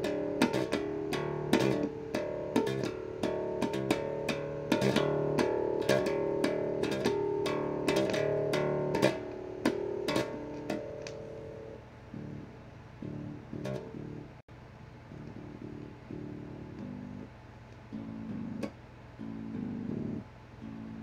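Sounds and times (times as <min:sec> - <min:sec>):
electric bass plucked notes: 0:00.0 - 0:14.4, 0:15.1 - 0:17.3, 0:17.9 - 0:21.0.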